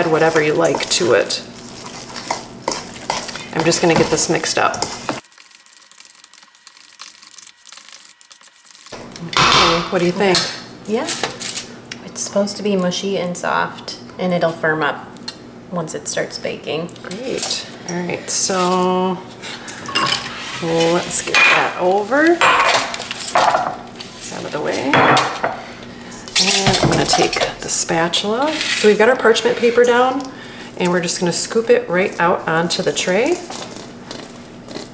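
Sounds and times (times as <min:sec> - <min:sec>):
fork mashing dough in metal bowl: 0:00.0 - 0:05.2, 0:26.3 - 0:30.3
utensils handled on stone countertop: 0:19.8 - 0:23.7.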